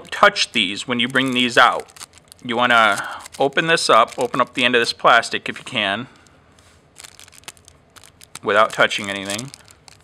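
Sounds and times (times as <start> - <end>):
plastic wrapper crinkling: 0.4 - 4.8, 5.4 - 10.0.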